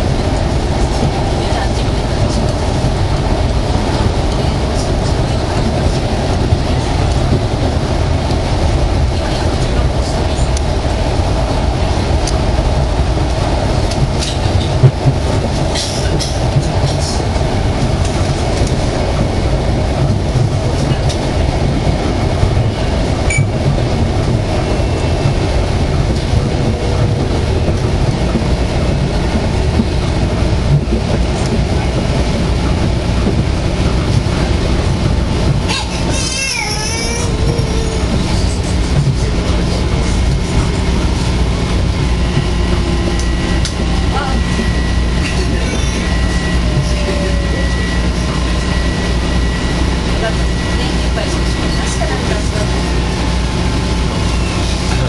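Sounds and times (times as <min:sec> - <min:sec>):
train rumbling on track: 0:00.0 - 0:55.0
train brakes squealing: 0:44.8 - 0:48.2.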